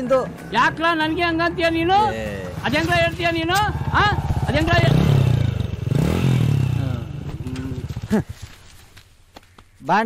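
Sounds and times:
motorcycle engine revving: 2.2s - 8.7s.

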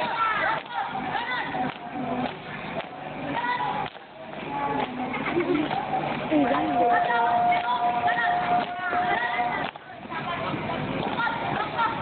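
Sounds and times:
people's voices wavering in pitch: 4.5s - 10.3s.

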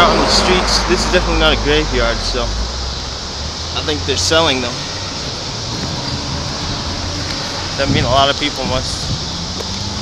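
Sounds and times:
even rushing noise: 0.0s - 10.0s.

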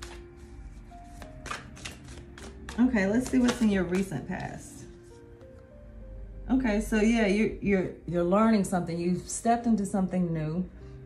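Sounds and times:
cards shuffled by hand: 0.0s - 0.4s, 1.1s - 4.1s
cards slapping: 0.0s - 0.4s, 1.1s - 4.2s.

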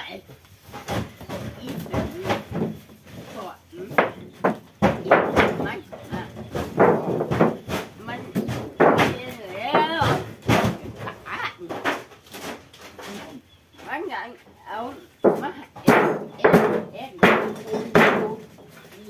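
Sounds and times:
people talking: 1.4s - 2.6s, 3.3s - 4.2s, 4.8s - 6.7s, 8.0s - 11.8s, 13.1s - 19.0s
sharp knocks: 3.8s - 13.1s, 15.2s - 18.6s.

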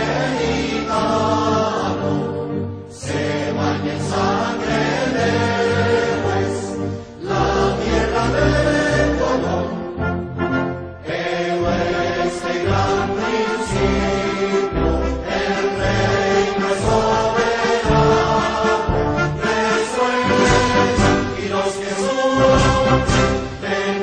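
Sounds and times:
choir singing an anthem: 0.0s - 24.0s.

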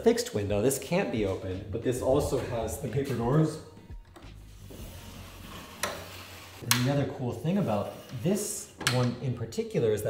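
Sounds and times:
paper doors sliding on track: 4.5s - 6.7s.

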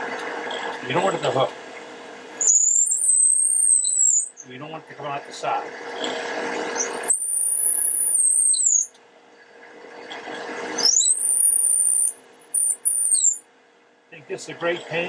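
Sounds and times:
high-pitched drill squeal: 2.4s - 4.5s, 6.8s - 8.9s, 10.8s - 13.4s
drill bit cutting wood: 6.8s - 8.8s.

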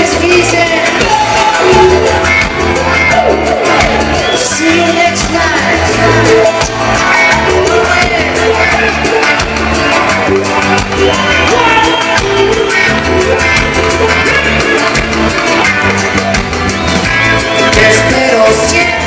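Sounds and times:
lead singer vocals: 0.0s - 9.9s, 17.4s - 19.0s
bass: 0.0s - 19.0s
driving drum beat: 0.0s - 19.0s.

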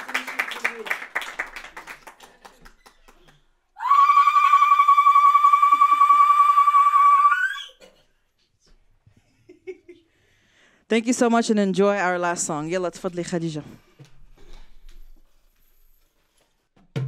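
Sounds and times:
group hand claps: 0.0s - 3.5s
woman ululating: 3.8s - 7.8s.

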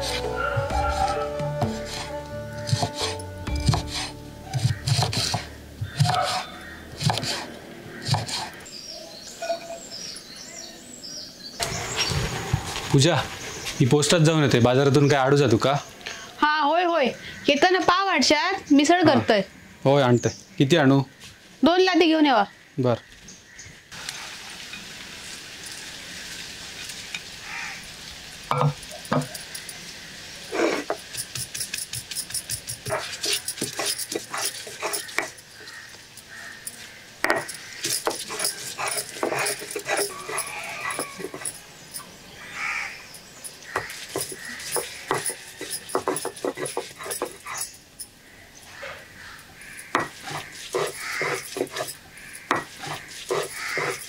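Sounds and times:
hands scraping on stone slab: 0.0s - 8.6s, 30.5s - 35.8s, 36.6s - 42.0s, 43.1s - 47.8s, 49.8s - 54.0s
birds chirping: 4.4s - 23.8s, 28.6s - 54.0s
glass bangles clinking: 28.5s - 29.8s, 30.9s - 42.2s, 43.0s - 48.2s, 49.8s - 54.0s
stone roller set on slab: 30.5s - 35.4s, 36.6s - 42.0s, 43.4s - 47.7s, 49.8s - 54.0s.

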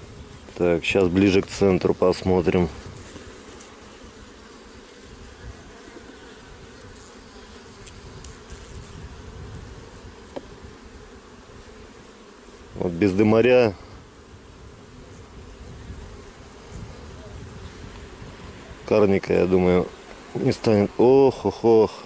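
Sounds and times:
honeybees humming: 0.0s - 22.0s.

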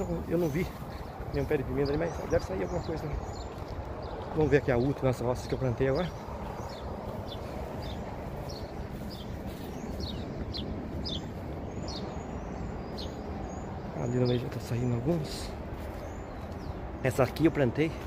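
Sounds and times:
small bird chirping: 0.0s - 17.0s
outdoor background hiss: 0.0s - 18.0s.

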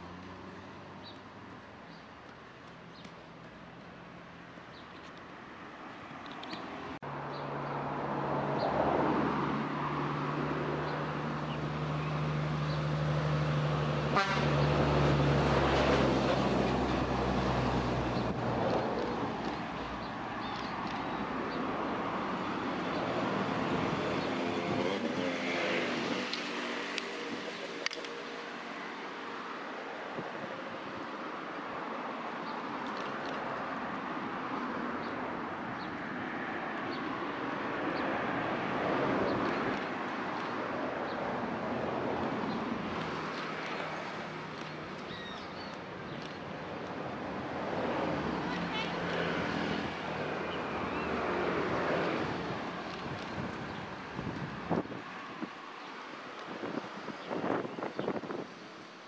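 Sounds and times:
outdoor background noise: 0.0s - 59.0s.

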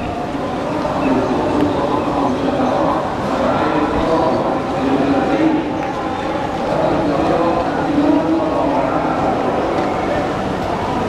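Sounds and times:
crowd of demonstrators: 0.0s - 11.0s.

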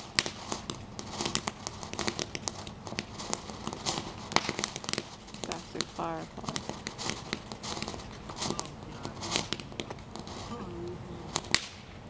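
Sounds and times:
faint background hiss: 0.0s - 12.0s
sharp pops: 0.0s - 12.0s.

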